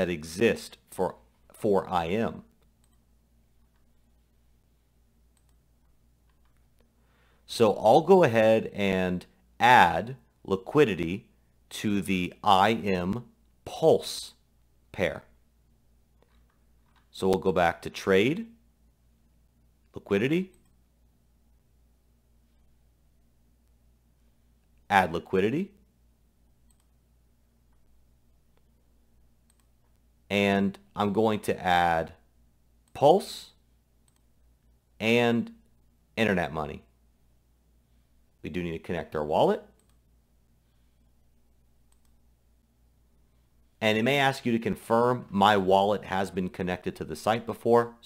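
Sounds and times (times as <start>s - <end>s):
computer mouse clicks: 2.5s - 4.0s, 5.3s - 6.9s, 16.2s - 17.1s, 26.6s - 27.0s, 29.4s - 30.0s, 34.0s - 34.3s, 39.8s - 40.1s, 41.8s - 42.2s
faint computer mouse clicks: 26.6s - 27.0s, 34.0s - 34.3s, 39.8s - 40.0s, 41.9s - 42.2s.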